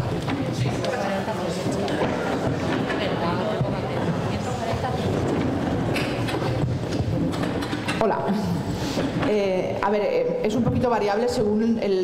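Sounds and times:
murmur of voices: 0.0 - 9.8.

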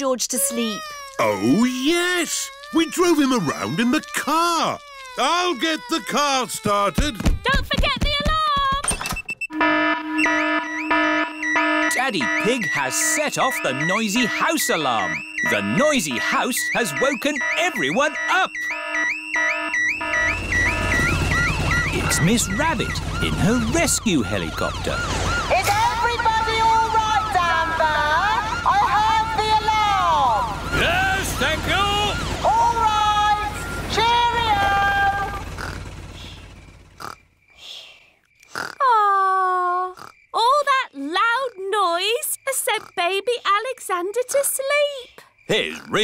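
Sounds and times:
cartoon character vocal sounds: 0.3 - 8.8, 45.5 - 46.0
cartoon house alarm wailing: 0.3 - 37.1, 45.5 - 46.0.

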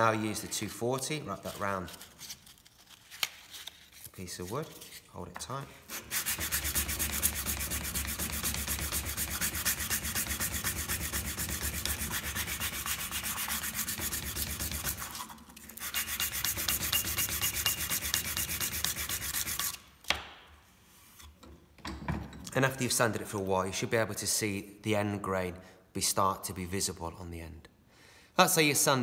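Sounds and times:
hand sanding wood: 5.9 - 19.8.

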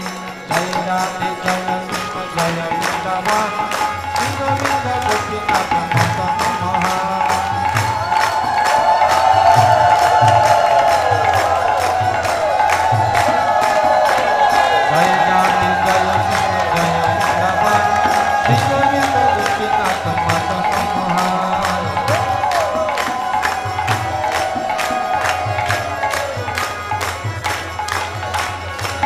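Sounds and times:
crowd chanting loudly: 0.0 - 29.0
drum beating steady rhythm: 0.0 - 29.0
hand cymbals striking: 0.0 - 29.0
harmonium melody: 0.0 - 29.0.

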